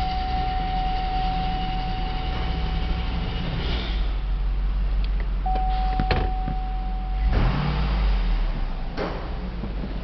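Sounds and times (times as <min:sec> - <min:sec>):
electronic warning tone: 0:00.0 - 0:03.2, 0:05.5 - 0:07.4
car engine idling: 0:00.0 - 0:10.0.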